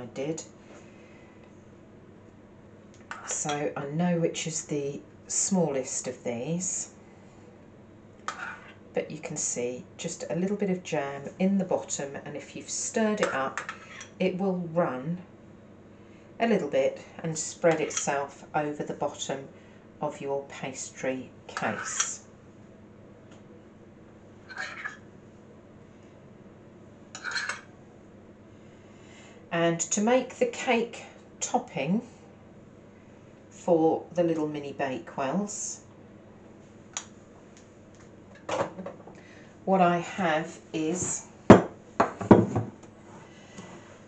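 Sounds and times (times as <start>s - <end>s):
teaspoon scraping glass dish: 8.3s - 8.7s, 24.5s - 25.0s, 27.2s - 27.6s.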